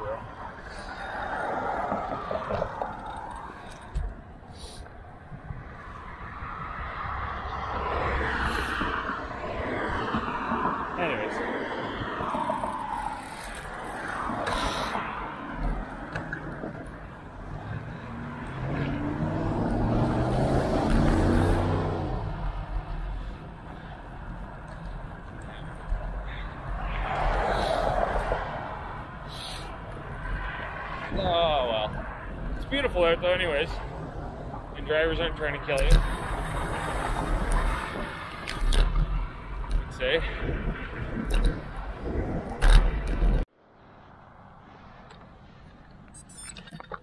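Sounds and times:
wind on camera: 0.0 - 43.5
bicycle road rumble: 0.0 - 47.0
motor traffic passing: 5.8 - 45.4
vehicle engine rising in pitch: 18.1 - 22.4.

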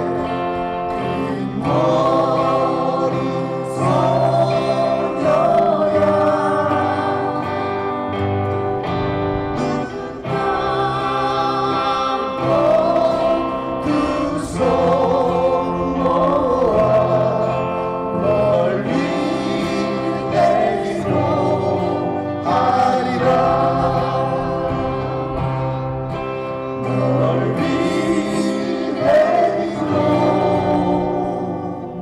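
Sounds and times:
men singing in harmony: 0.0 - 8.5, 9.6 - 32.0
acoustic guitar: 0.0 - 32.0.

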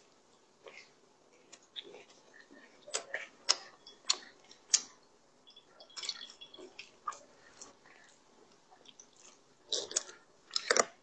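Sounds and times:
chewing soft bread: 0.0 - 11.0.

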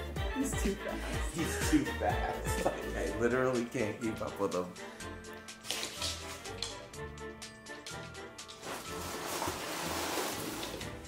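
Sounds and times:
cardboard box scraping on wooden floor: 8.6 - 11.0.

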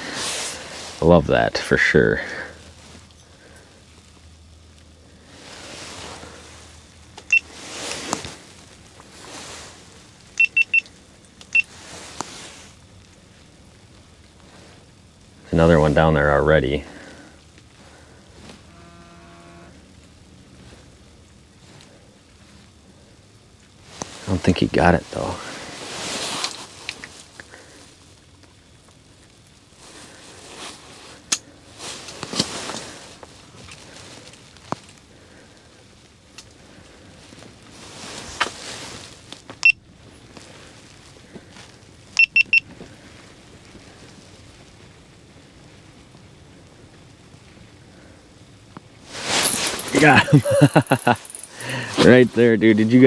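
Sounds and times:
clothing rustling: 5.2 - 6.8, 7.4 - 10.0, 25.0 - 27.3, 37.2 - 39.4, 49.1 - 52.4
short high-pitched electronic beeps: 10.4 - 10.8, 42.2 - 42.6.

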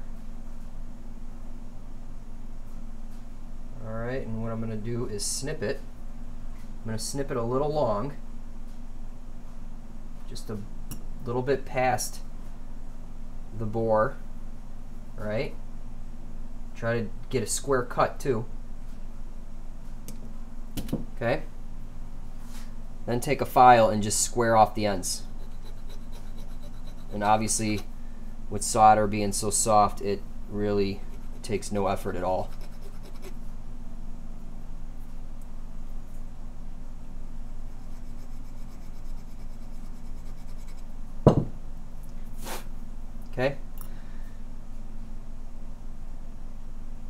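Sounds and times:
file rubbing on solder wire: 24.6 - 27.9, 30.8 - 33.4, 37.7 - 40.9
sharp thump: 41.3 - 41.6.

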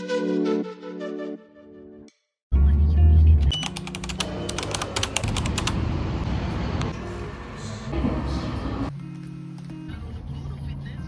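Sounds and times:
keyboard typing clicks: 3.5 - 5.8.

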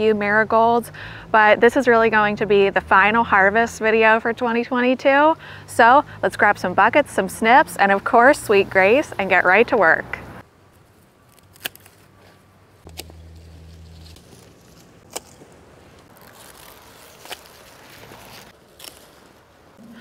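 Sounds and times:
foliage rustling: 10.3 - 20.0.

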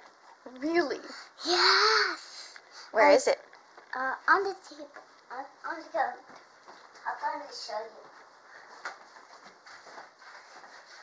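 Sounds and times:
footsteps on wooden floor: 6.2 - 11.0.

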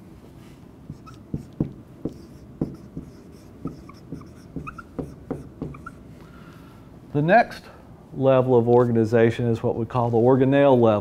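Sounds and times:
marker squeaking on whiteboard: 0.9 - 6.0.

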